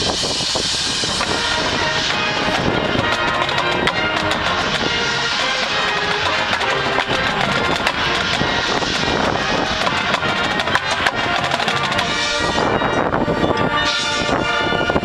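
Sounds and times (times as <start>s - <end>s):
school band playing: 0.9s - 15.0s.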